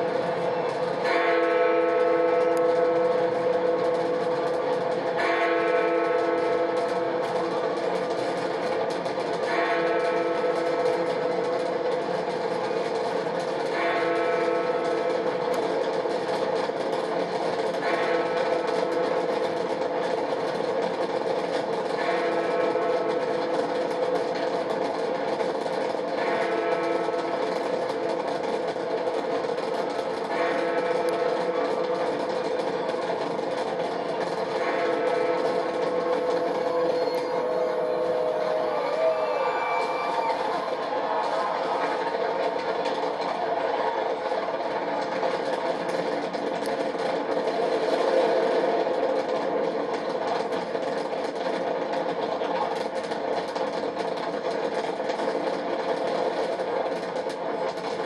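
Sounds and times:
fireworks rumble and crackle: 0:00.0 - 0:58.0.

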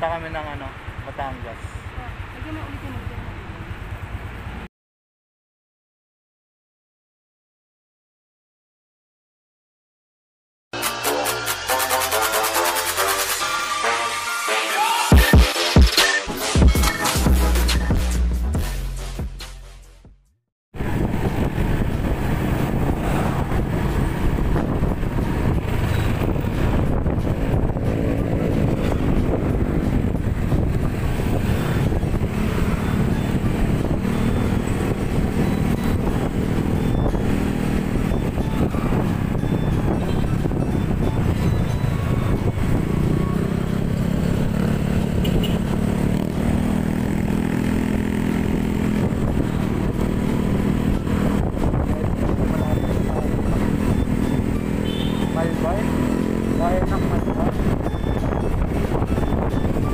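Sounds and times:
motorcycle engine running: 0:00.0 - 0:04.7, 0:20.8 - 0:59.9
wind and road noise: 0:00.0 - 0:04.7, 0:20.7 - 0:59.9.

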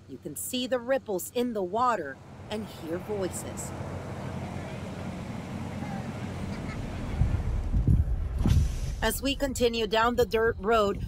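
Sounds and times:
vehicle driving on dirt road: 0:02.1 - 0:09.5
faint distant voices: 0:02.5 - 0:07.6.

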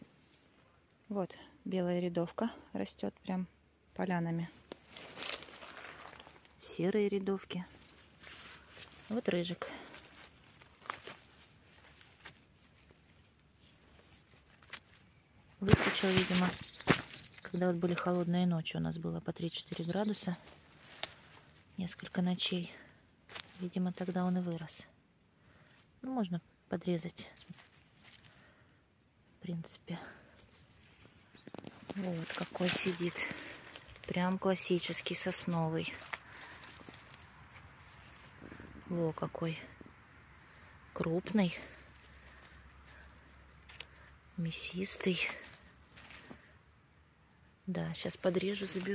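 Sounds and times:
faint rustles of pine needles: 0:02.9 - 0:48.9
light crackle: 0:04.5 - 0:06.7, 0:07.7 - 0:18.0, 0:19.7 - 0:24.1, 0:30.6 - 0:46.6.

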